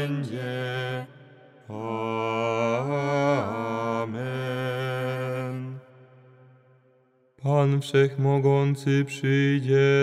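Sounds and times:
hymn singing: 0:00.0 - 0:05.8.

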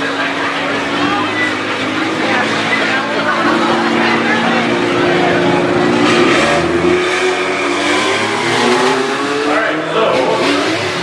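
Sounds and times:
loud vehicle engines running: 0:00.0 - 0:11.0.

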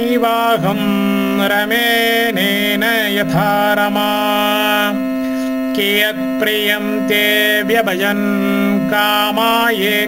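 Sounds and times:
melodic verse chanting: 0:00.0 - 0:10.0
steady drone tone: 0:00.0 - 0:10.0.

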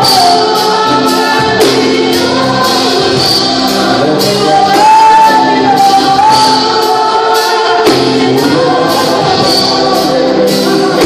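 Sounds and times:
group singing gospel: 0:00.0 - 0:11.0
instruments playing: 0:00.0 - 0:11.0.

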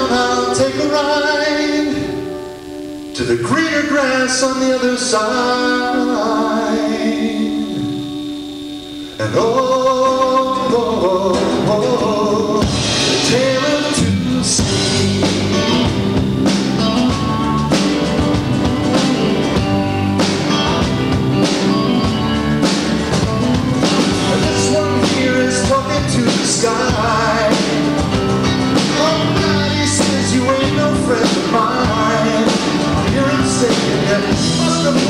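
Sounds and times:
person singing: 0:00.0 - 0:16.0, 0:23.5 - 0:35.0
acoustic guitar: 0:00.0 - 0:35.0
bass: 0:00.0 - 0:35.0
electric guitars: 0:00.0 - 0:35.0
keyboards: 0:00.0 - 0:35.0
drum kit steady beat: 0:10.5 - 0:35.0.

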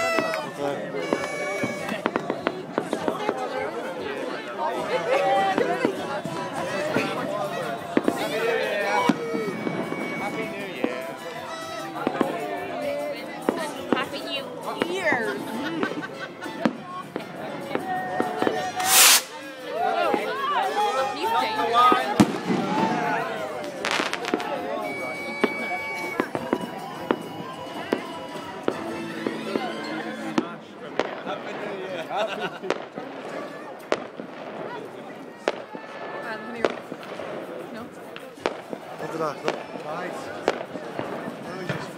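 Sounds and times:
crowd chatter: 0:00.0 - 0:41.9
fireworks bangs: 0:00.1 - 0:03.7, 0:05.5 - 0:08.4, 0:09.0 - 0:11.3, 0:16.6 - 0:20.4, 0:21.8 - 0:29.6, 0:30.4 - 0:32.0, 0:32.6 - 0:41.9.

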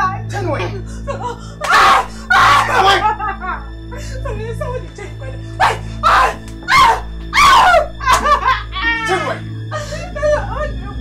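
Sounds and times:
background music: 0:00.0 - 0:11.0
loud laughter: 0:07.4 - 0:09.4.

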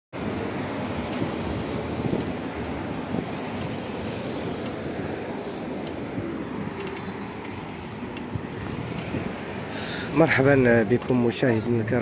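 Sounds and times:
cars driving on busy road: 0:00.1 - 0:12.0
wind buffeting microphone: 0:00.2 - 0:12.0.

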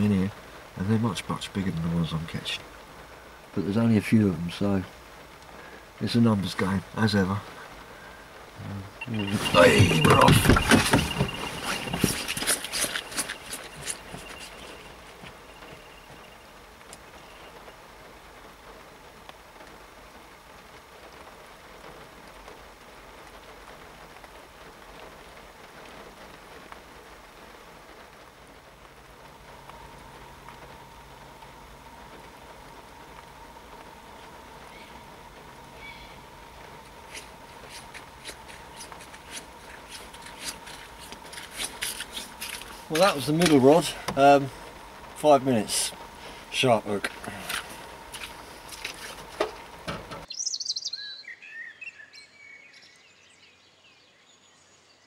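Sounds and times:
steady low hum: 0:04.9 - 0:18.5, 0:28.6 - 0:50.3
high steady bite alarm tone: 0:09.0 - 0:16.4.

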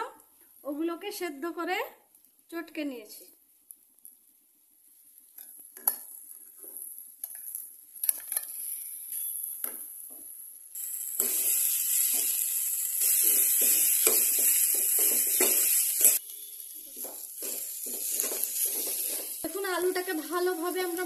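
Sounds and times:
potatoes sizzling in oil: 0:03.6 - 0:21.0
spoon scraping a pan: 0:13.0 - 0:19.4.

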